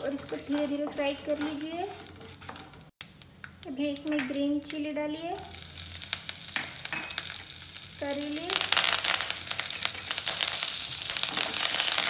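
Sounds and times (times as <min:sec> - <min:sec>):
oil sizzling with sharp crackles: 0:00.0 - 0:12.0.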